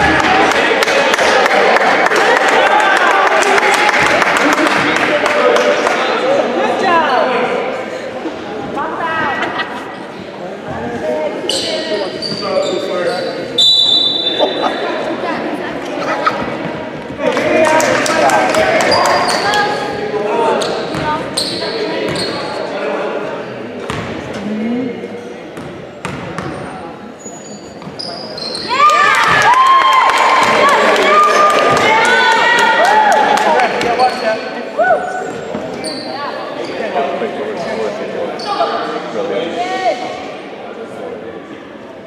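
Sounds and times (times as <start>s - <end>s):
murmur of spectators: 0.0s - 42.0s
sneaker squeaks on court: 11.5s - 14.5s, 20.6s - 22.6s, 25.2s - 28.7s, 35.2s - 36.8s.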